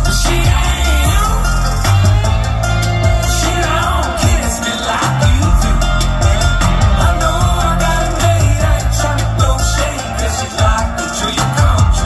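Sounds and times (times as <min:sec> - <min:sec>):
drum kit steady beat: 0:00.0 - 0:12.0
live band playing loud: 0:00.0 - 0:12.0.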